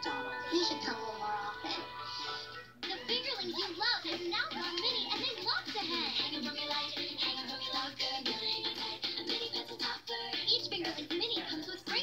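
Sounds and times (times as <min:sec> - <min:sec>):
music through tv speaker: 0:00.0 - 0:12.0.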